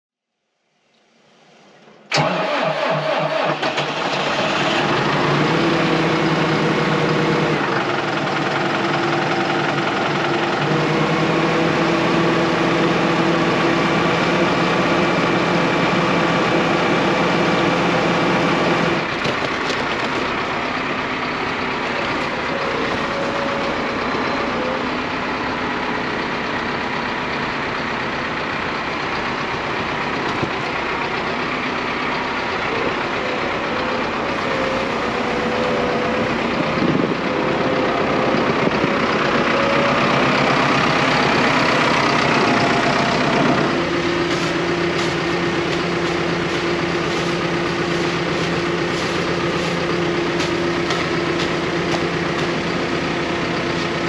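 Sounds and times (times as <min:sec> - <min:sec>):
tractor diesel engine running: 0:01.2 - 0:54.0.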